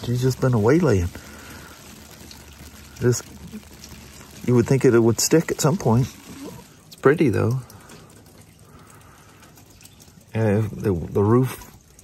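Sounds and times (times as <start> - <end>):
wet snow hissing on umbrella: 0.4 - 6.8.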